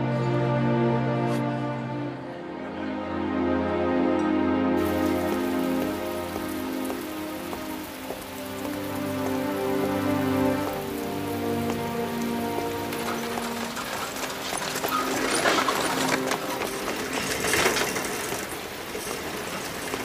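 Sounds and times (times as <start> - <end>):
slow background music: 0.0 - 19.9
steady rain falling: 3.6 - 20.0.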